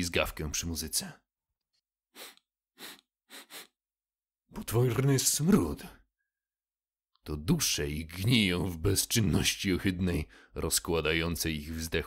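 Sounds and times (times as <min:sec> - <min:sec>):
person sniffing: 0:02.1 - 0:03.8.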